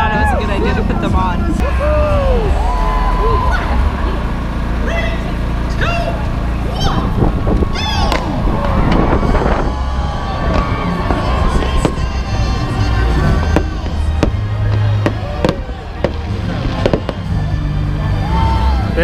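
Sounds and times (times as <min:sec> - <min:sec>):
music: 0:00.0 - 0:04.2, 0:09.3 - 0:19.0
crowd cheering: 0:00.0 - 0:19.0
fireworks bangs: 0:07.3 - 0:17.5.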